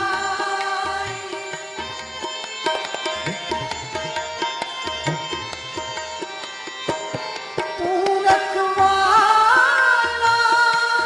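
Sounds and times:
harmonium chords: 0.0s - 11.0s
tabla strokes: 0.0s - 11.0s.

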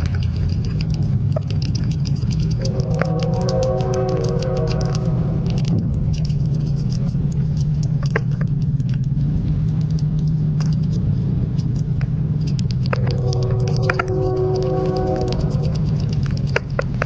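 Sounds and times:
small animal chewing wetly: 0.0s - 17.0s
steady low hum: 0.0s - 17.0s.

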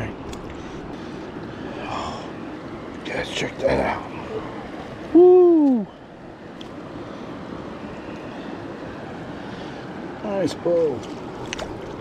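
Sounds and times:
stream water rushing: 0.0s - 12.0s.

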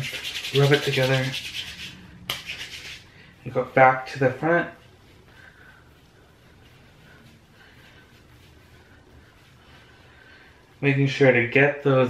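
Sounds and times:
hands rubbing wet hair: 0.0s - 3.1s, 4.2s - 10.1s
low room hum: 0.0s - 12.0s.

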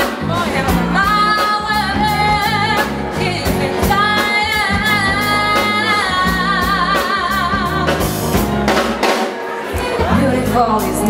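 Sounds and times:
live soul band playing: 0.0s - 11.0s
woman singing with vibrato: 0.2s - 8.4s, 9.8s - 11.0s.

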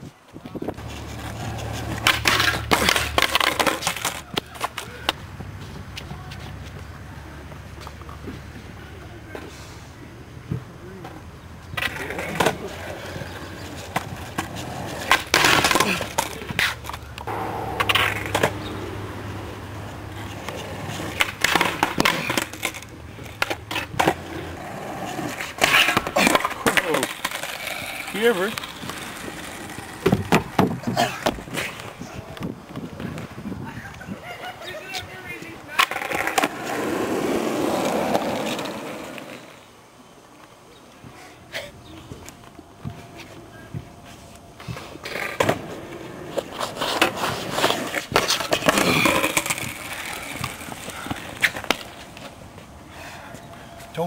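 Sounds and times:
skateboard wheels rolling on asphalt: 0.0s - 17.3s, 20.1s - 54.0s
skateboard clattering on rail: 1.0s - 5.2s.

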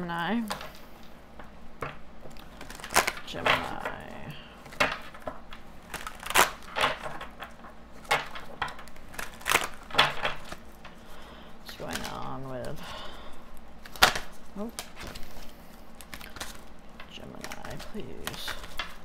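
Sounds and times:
cards being shuffled: 1.8s - 12.8s, 13.5s - 19.0s.

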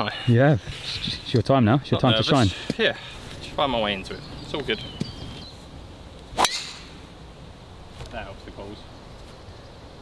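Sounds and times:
golf club striking ball: 6.4s - 7.0s.

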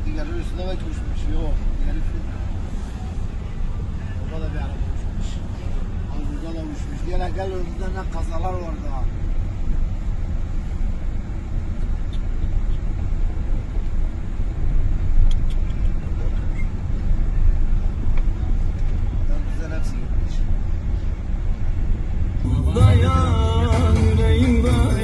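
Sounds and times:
car engine and tyres rumbling: 0.0s - 25.0s.

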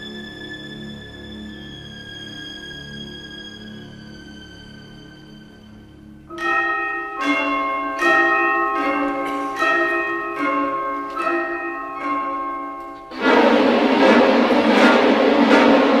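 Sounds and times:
orchestral music: 0.0s - 16.0s
bell-like ringing chords: 6.3s - 16.0s.

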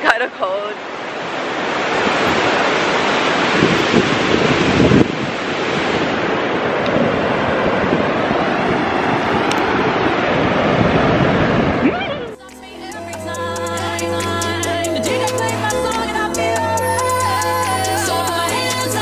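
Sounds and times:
surf washing onto beach: 0.0s - 12.4s
wind on microphone: 1.2s - 12.4s.

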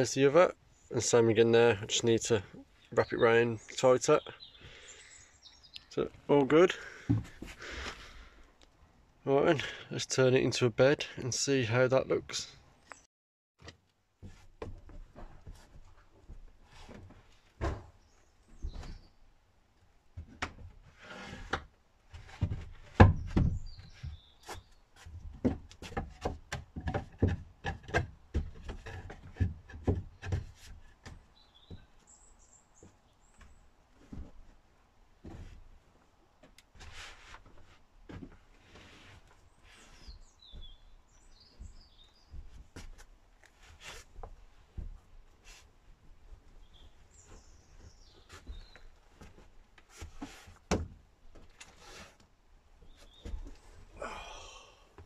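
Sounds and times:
wooden knocks and thumps: 7.0s - 7.9s, 13.6s - 19.1s, 20.2s - 32.0s, 46.8s - 51.6s.

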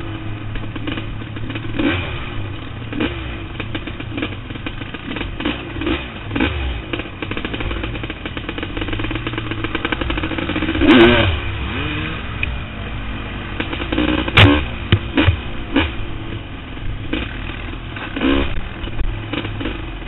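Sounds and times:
off-road vehicle engine revving: 0.0s - 20.0s
vehicle clatter: 0.0s - 20.0s.

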